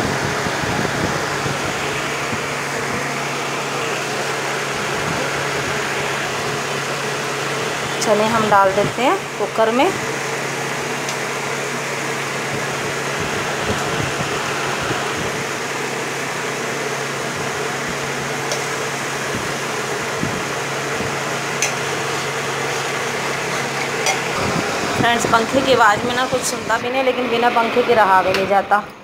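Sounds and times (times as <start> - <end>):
electric fan whooshing: 0.0 - 29.0.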